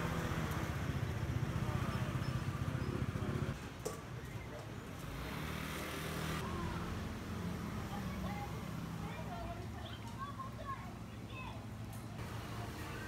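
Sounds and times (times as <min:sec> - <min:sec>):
traffic rumble: 0:00.0 - 0:13.0.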